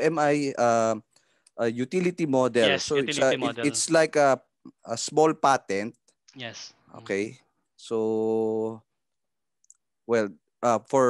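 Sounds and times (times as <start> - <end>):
man's drawn-out hesitation sound: 2.6 - 4.0.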